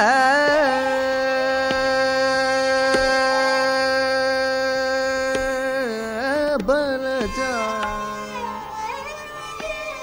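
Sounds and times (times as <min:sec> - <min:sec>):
light tabla strokes: 0:00.4 - 0:10.0.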